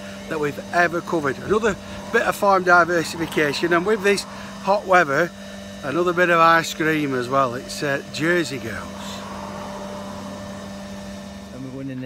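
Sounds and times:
machine hum: 0:00.0 - 0:12.0.

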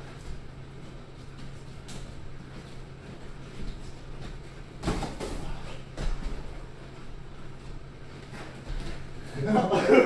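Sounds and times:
footwork on ring canvas: 0:00.0 - 0:09.8
steady low hum: 0:00.0 - 0:10.0.

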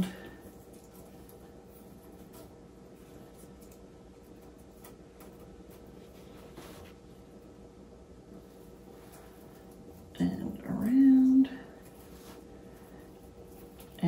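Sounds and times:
faint rustling: 0:00.0 - 0:07.6, 0:08.3 - 0:14.0
low room hum: 0:00.0 - 0:14.0.

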